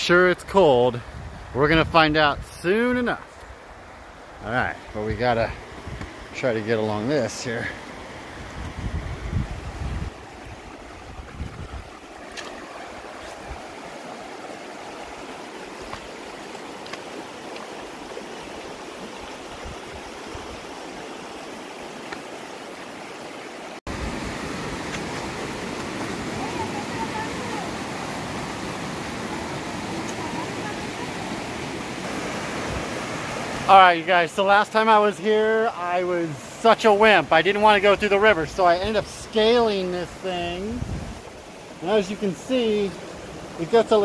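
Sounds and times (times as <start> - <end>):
river rushing over rocks: 3.6 - 44.0.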